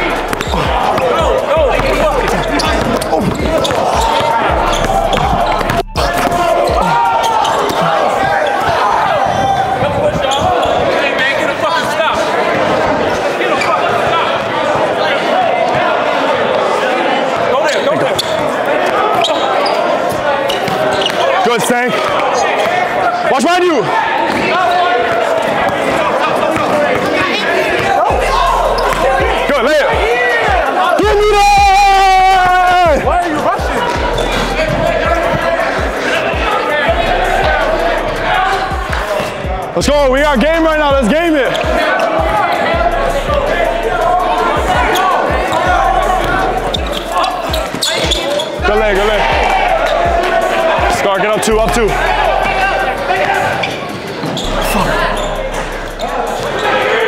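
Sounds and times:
people shouting and talking: 0:00.0 - 0:57.0.

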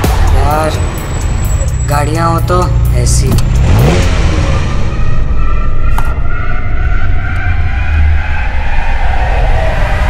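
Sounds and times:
music: 0:00.0 - 0:03.6
car engine humming and revving: 0:00.0 - 0:10.0.

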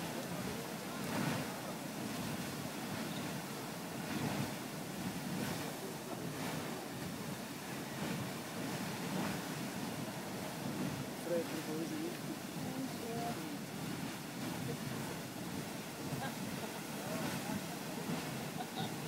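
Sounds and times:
geyser water rushing: 0:00.0 - 0:19.0
steam venting: 0:00.0 - 0:19.0.

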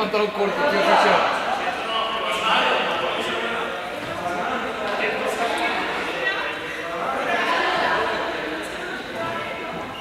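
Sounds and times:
young people calling and chattering: 0:00.0 - 0:10.0.

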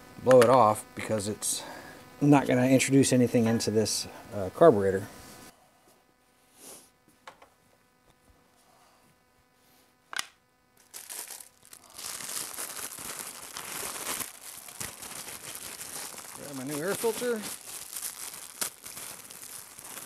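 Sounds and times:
packaging crinkling and tearing: 0:10.8 - 0:20.0.

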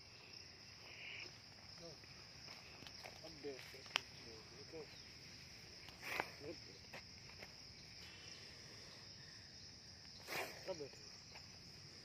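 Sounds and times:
insect buzz: 0:00.0 - 0:12.0
insects chirring: 0:00.0 - 0:12.0.

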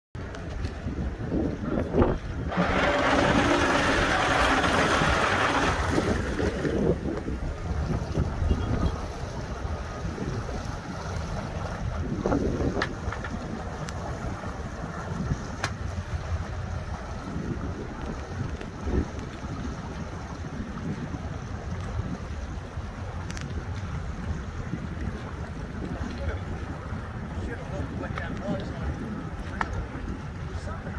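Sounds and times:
outboard motors running: 0:00.2 - 0:30.9
propellers stirring water: 0:00.2 - 0:30.9
wind on microphone: 0:00.2 - 0:30.9.

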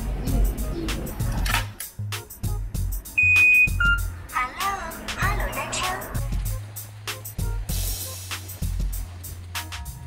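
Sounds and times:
background music with steady beat: 0:00.0 - 0:10.0
electronic bike lock beeps: 0:03.2 - 0:04.1.

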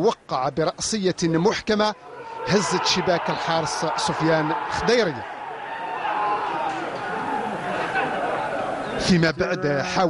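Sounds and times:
football match broadcast: 0:00.0 - 0:10.0
men calling out and chattering: 0:01.2 - 0:10.0.

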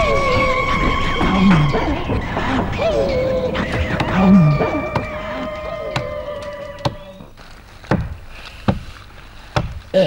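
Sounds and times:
axe chopping into tree trunk: 0:07.9 - 0:08.9, 0:09.5 - 0:09.8.

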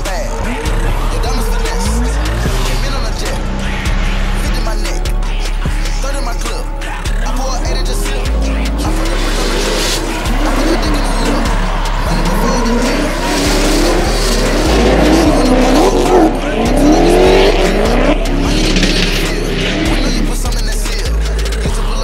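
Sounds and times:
car engines revving: 0:00.0 - 0:22.0
hip-hop music with heavy bass: 0:00.0 - 0:22.0
tyres squealing: 0:07.3 - 0:21.6.

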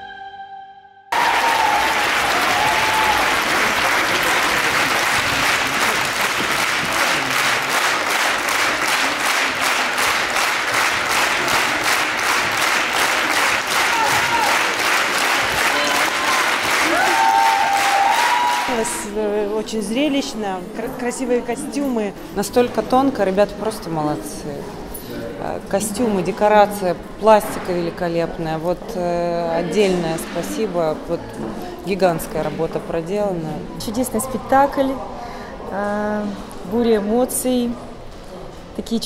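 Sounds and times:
audience clapping in unison: 0:01.1 - 0:18.8.

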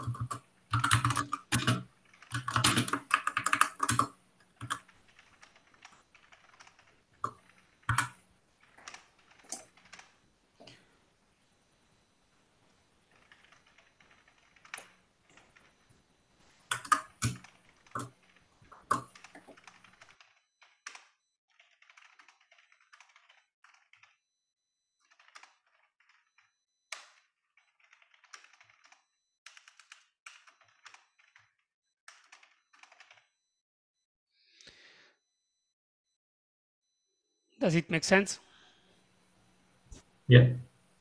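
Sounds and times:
typing on a keyboard: 0:00.0 - 0:10.2, 0:13.1 - 0:15.8, 0:16.7 - 0:24.2, 0:25.0 - 0:33.3.

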